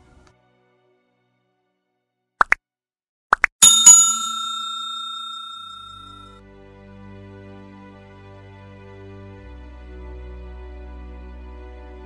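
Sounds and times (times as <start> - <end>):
notification bell chime: 3.6 - 6.2.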